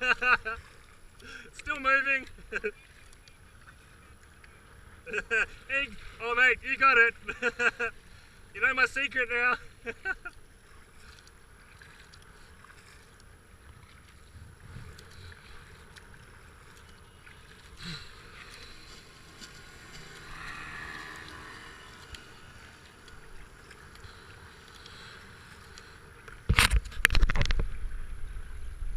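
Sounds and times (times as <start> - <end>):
faint power boat engine: 0.0 - 26.5
water washing along kayak hull: 0.0 - 28.9.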